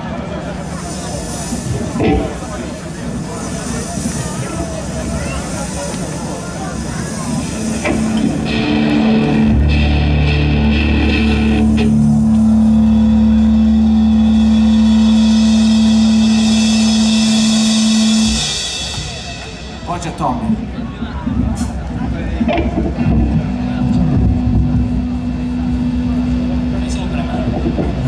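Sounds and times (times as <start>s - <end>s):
crowd murmur: 0.0s - 28.0s
deep bass note: 1.9s - 2.6s, 7.5s - 21.6s, 22.3s - 28.0s
band sustained note intro: 6.8s - 21.0s, 22.5s - 28.0s.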